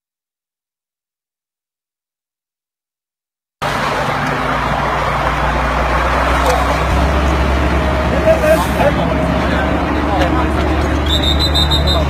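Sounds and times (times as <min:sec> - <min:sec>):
indistinct voices talking: 0:03.6 - 0:12.0
road vehicles rumbling: 0:03.6 - 0:12.0.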